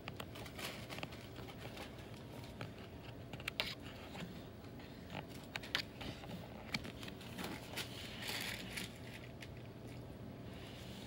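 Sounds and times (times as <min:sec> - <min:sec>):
paper pages rustling and turning: 0:00.0 - 0:04.3, 0:04.9 - 0:10.0.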